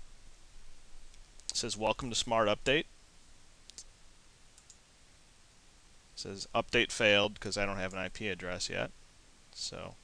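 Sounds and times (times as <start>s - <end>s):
computer mouse clicks: 3.7s - 3.9s, 4.6s - 4.8s.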